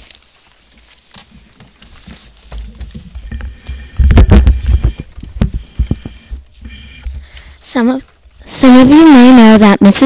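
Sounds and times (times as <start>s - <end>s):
paper rustling: 0.0s - 8.5s
microphone handling rumble: 2.7s - 7.4s.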